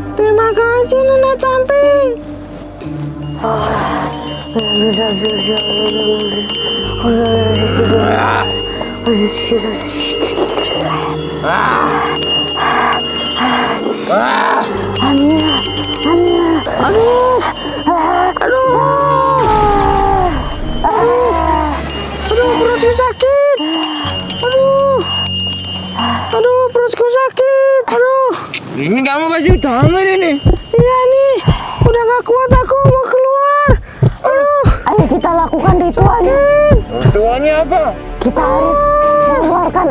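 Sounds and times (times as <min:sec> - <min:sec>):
wavering musical tone: 0:02.8 - 0:27.8, 0:29.2 - 0:33.0, 0:35.0 - 0:39.9
glittering chime strikes: 0:03.2 - 0:26.9, 0:29.4 - 0:32.4
drawn-out aah cries: 0:09.8 - 0:23.0.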